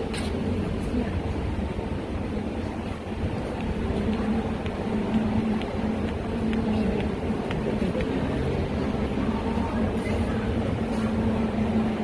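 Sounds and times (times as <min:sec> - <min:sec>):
traffic: 0:00.0 - 0:12.0.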